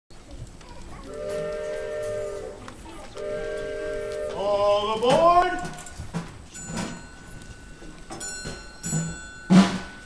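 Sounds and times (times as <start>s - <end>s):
steamboat chime whistle blasts: 1.2s - 2.6s, 3.2s - 4.8s.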